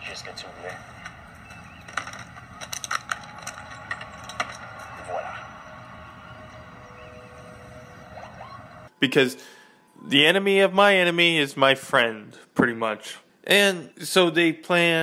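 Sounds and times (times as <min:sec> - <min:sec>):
low ambient bed: 0:00.0 - 0:12.4
sharp clicks and knocks: 0:00.9 - 0:05.0.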